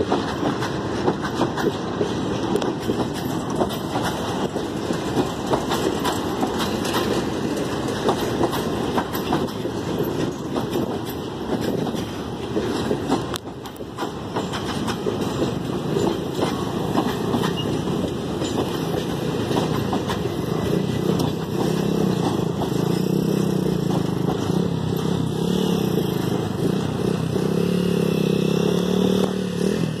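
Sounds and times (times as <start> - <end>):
freight wagons rumbling on rails: 0.0 - 30.0
wheels clicking over track: 0.0 - 30.0.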